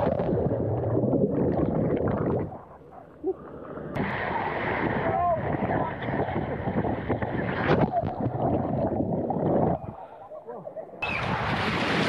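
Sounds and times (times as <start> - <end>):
water rushing down slide: 3.9 - 9.1, 11.0 - 12.0
wind on microphone: 4.0 - 10.1
splash into pool: 11.0 - 12.0.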